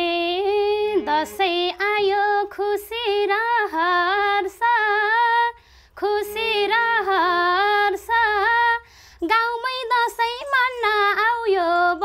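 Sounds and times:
woman singing folk melody: 0.0 - 12.0.

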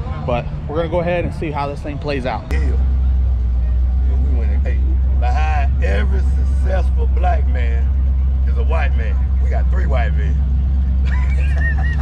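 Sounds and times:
people talking: 0.0 - 2.9, 3.6 - 10.4, 11.0 - 12.0
vehicle engine idling: 0.0 - 12.0.

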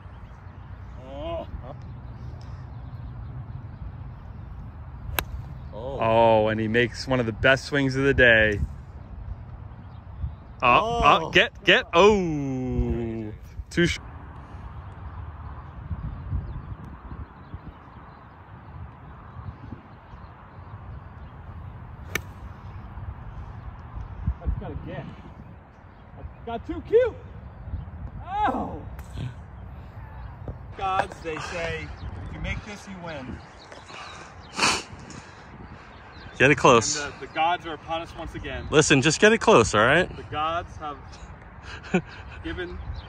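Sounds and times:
golf club striking ball: 5.1 - 5.5, 22.1 - 22.4.

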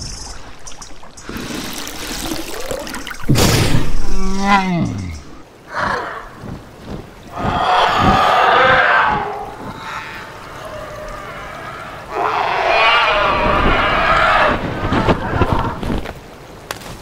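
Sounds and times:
quieter lower creature call: 7.3 - 15.8.

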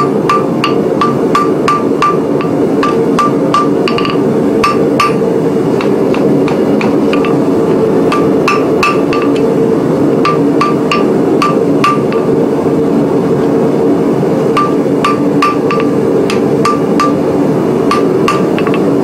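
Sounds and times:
hammer striking steel on anvil: 0.0 - 7.4, 8.1 - 9.5, 10.2 - 12.3, 14.6 - 19.0
gas forge burners roaring: 0.0 - 19.0.

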